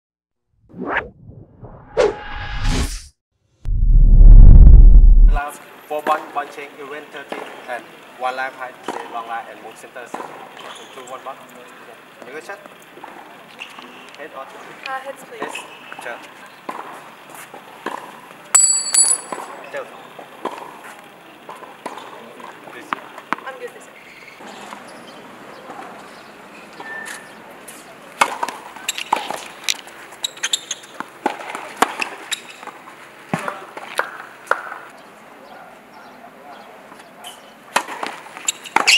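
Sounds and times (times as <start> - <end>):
rising swoosh: 0.6 - 5.4
soft low rumble: 3.6 - 5.4
sharp hit: 3.7 - 5.4.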